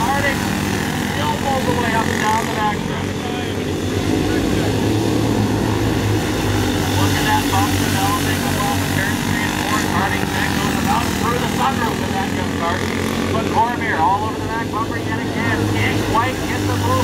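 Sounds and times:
kart engines running: 0:00.0 - 0:17.0.

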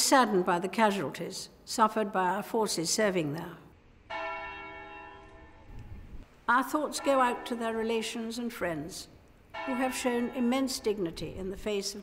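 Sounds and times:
church bell tolling: 0:04.1 - 0:06.2, 0:06.8 - 0:08.3, 0:09.5 - 0:11.1.

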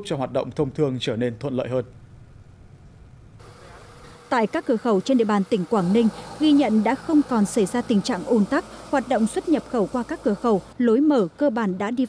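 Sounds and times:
vehicle engine noise: 0:02.7 - 0:10.8.

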